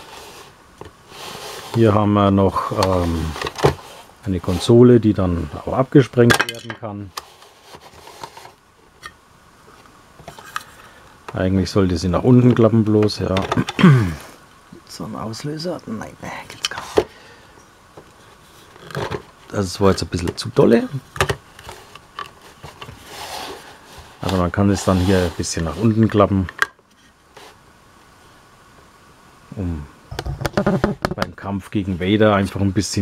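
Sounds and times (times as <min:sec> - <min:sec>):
plastic rubbing on plastic: 0:00.0 - 0:05.9, 0:07.0 - 0:08.6, 0:18.1 - 0:27.6.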